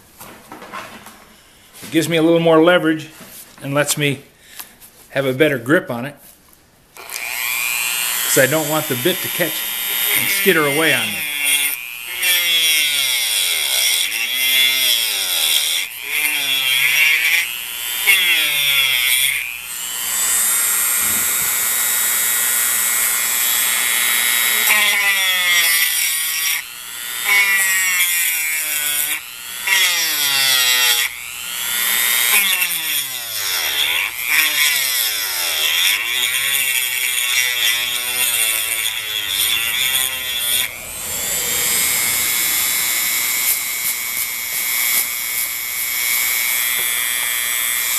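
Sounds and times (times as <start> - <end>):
rotary tool grinding stone: 7.0 - 47.9.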